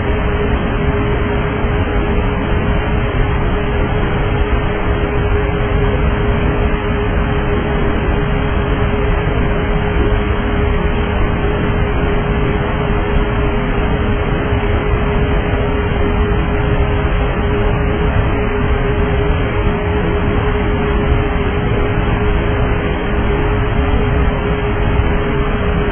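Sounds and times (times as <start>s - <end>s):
constant electrical hum: 0.0s - 25.9s
engine and airflow rush: 0.0s - 25.9s.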